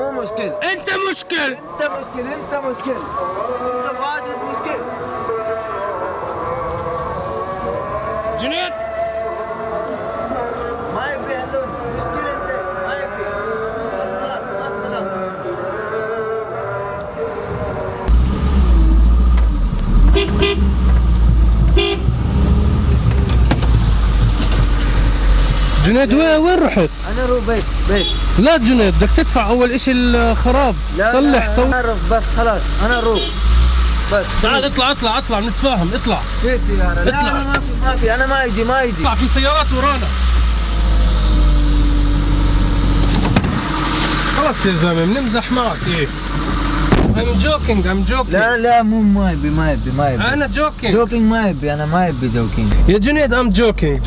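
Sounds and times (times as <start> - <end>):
car rumbling in motion: 16.7 - 54.0
van engine idling: 18.1 - 41.3
car horn toots: 20.0 - 20.9, 21.6 - 22.4, 27.8 - 29.1, 32.8 - 33.7
sharp knock: 46.9 - 47.2.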